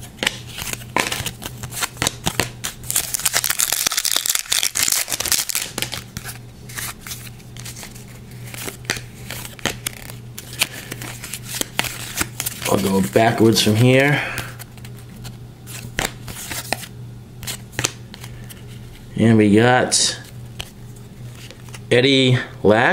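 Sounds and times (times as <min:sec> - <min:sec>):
trading cards clicking and rustling: 0:00.0 - 0:19.0.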